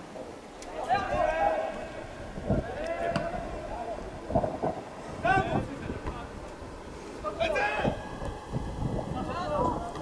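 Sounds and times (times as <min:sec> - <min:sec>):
voices shouting: 0:00.7 - 0:04.1.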